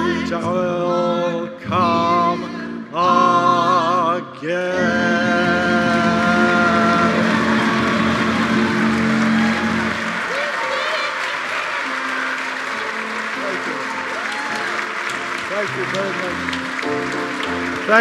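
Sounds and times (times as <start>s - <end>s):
person singing: 0.0s - 8.6s
live band playing: 4.8s - 18.0s
audience applauding: 5.4s - 18.0s
voices calling out: 6.2s - 16.4s.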